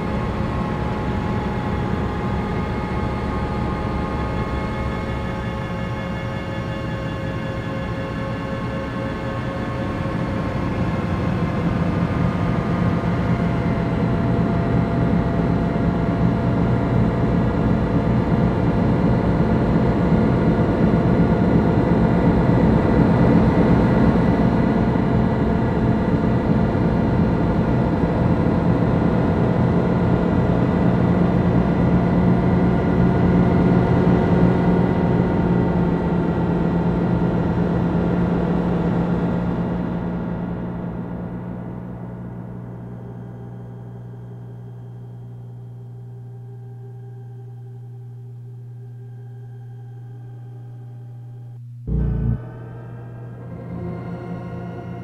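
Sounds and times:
noise music drone: 0.0 - 45.1, 47.5 - 55.0
heavy low rumble: 51.9 - 55.0.

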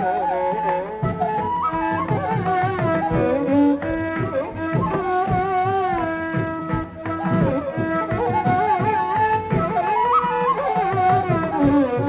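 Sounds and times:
bamboo flute melody: 0.0 - 12.0
drum strokes: 1.0 - 12.0.

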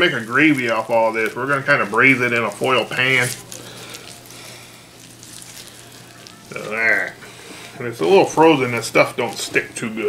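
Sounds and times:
wet rubbing and squishing: 0.0 - 10.0.

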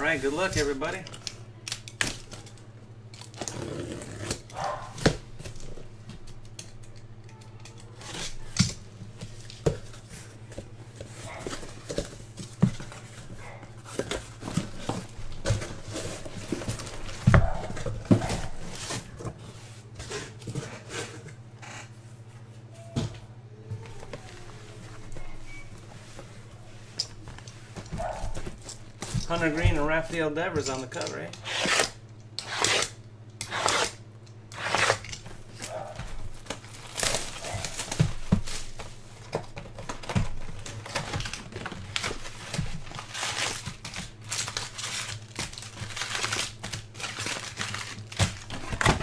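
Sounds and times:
cardboard being cut and torn: 31.3 - 38.5, 40.8 - 49.0
cardboard clicks and rustles: 34.8 - 49.0.

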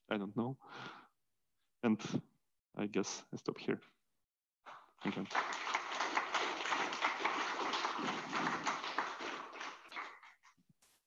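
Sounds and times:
audience applauding: 4.7 - 10.5.

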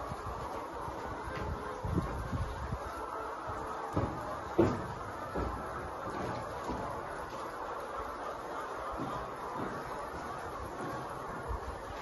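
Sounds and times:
hens chattering: 0.0 - 12.0
sharp knocks: 3.9 - 7.1.

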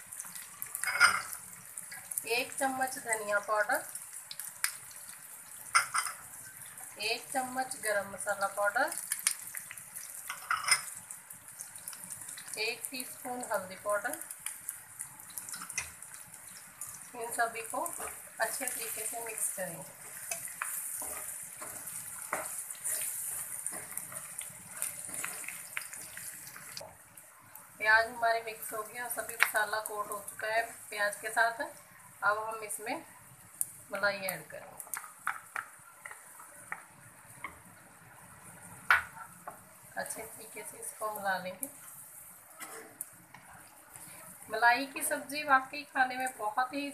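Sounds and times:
onions sizzling in oil: 0.0 - 46.9
spatula taps and knocks: 34.9 - 37.6.

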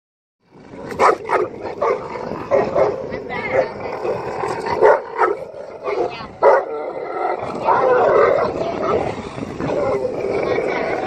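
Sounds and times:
dog barking: 1.0 - 4.2, 4.8 - 6.7.

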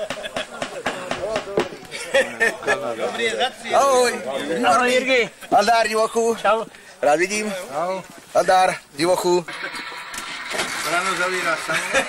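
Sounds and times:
people talking: 0.0 - 10.1, 10.7 - 12.0.

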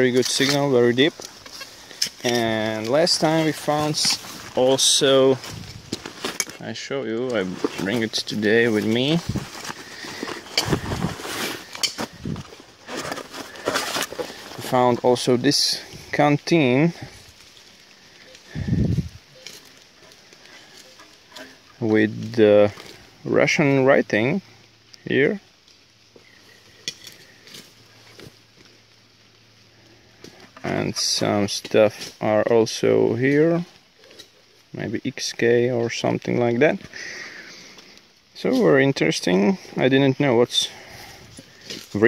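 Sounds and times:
rustling clothing and dry leaves: 0.0 - 42.0
metal canteen handling noise: 0.1 - 15.2.

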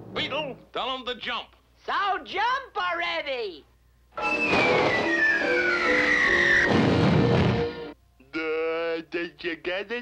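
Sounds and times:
cartoon music: 4.2 - 6.8
falling whistle sound effect: 4.2 - 7.0
low rumbling crash: 6.6 - 7.8.

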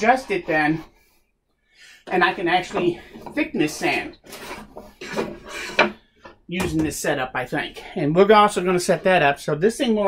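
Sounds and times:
wooden parts sliding on table: 2.0 - 6.4.

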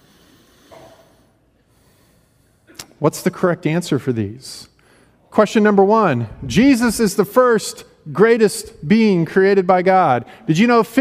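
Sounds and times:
faint short breath: 0.0 - 2.8.

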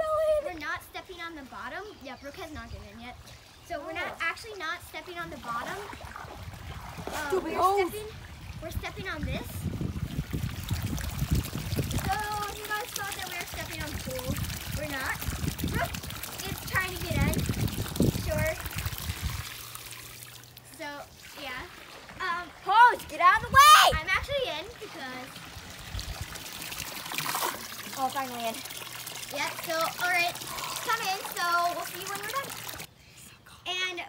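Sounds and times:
high-pitched child's voice: 0.0 - 2.8, 7.1 - 9.7, 12.0 - 18.6, 20.7 - 25.4, 29.3 - 34.0
girls' voices: 0.0 - 5.9, 7.1 - 9.7, 12.0 - 18.7, 20.7 - 25.4, 29.3 - 34.0
water sloshing in a pool: 0.0 - 32.9.

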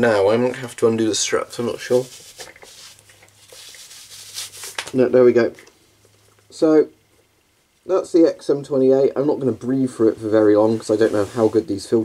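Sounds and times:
mask straps rustling against hair: 1.3 - 5.1
soft scuffs: 1.9 - 5.0.

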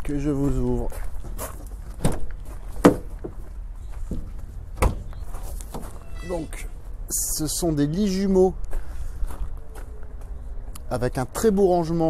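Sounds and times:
steady low rumble: 0.0 - 12.0
van door latch clicking and clunking: 2.0 - 3.1, 4.1 - 5.1.

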